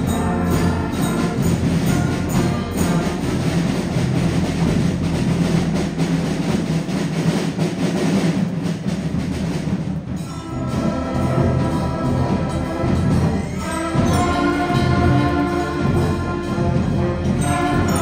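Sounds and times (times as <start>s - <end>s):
wind instruments holding chords: 0.0s - 7.2s, 10.1s - 18.0s
busy drumming: 0.0s - 18.0s
concert band playing: 0.0s - 18.0s.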